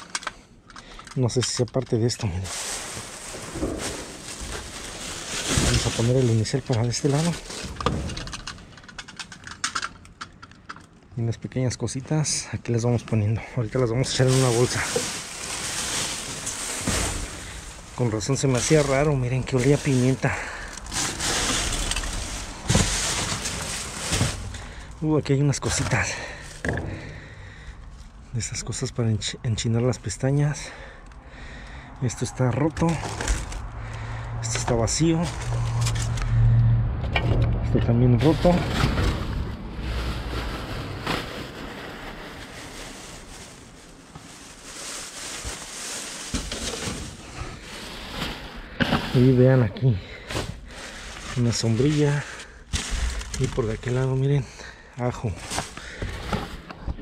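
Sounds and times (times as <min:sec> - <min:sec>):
plastic bags rustling and crinkling: 0:00.8 - 0:11.1, 0:12.1 - 0:29.0, 0:32.1 - 0:36.6, 0:38.2 - 0:57.0.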